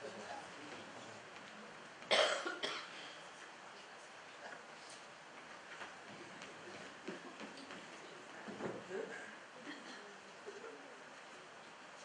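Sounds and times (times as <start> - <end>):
person coughing: 2.1 - 3.1.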